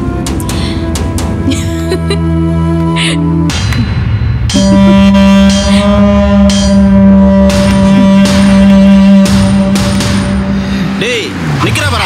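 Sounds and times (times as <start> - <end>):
background music drone: 0.0 - 12.0
motorbike engine passing: 5.6 - 12.0.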